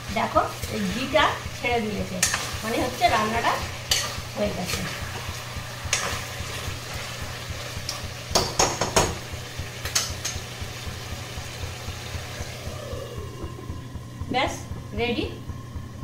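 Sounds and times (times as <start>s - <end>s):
chicken sizzling in pan: 0.0s - 13.3s
steady low hum: 0.0s - 16.0s.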